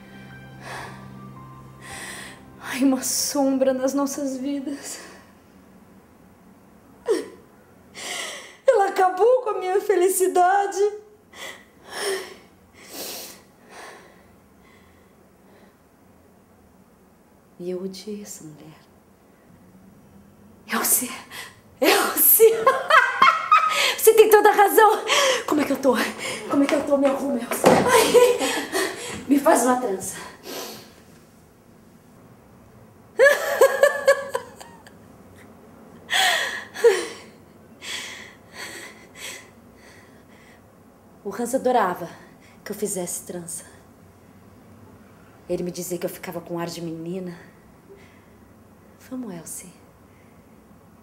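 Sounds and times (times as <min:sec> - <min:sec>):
woman laughing through tears: 0:27.8 - 0:29.2, 0:33.2 - 0:34.9.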